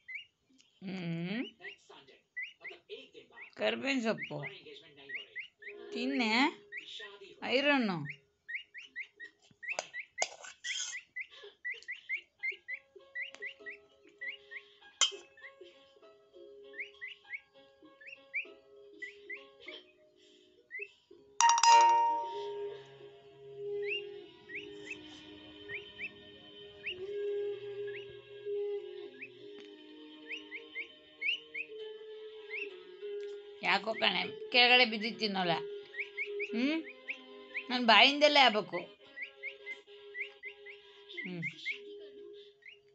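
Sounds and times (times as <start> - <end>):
peafowl chick peeping: 0.0 - 0.3, 1.4 - 1.8, 2.4 - 6.0, 7.9 - 15.6, 16.7 - 19.9, 21.9 - 22.8, 23.8 - 28.3, 29.0 - 32.9, 35.0 - 42.9.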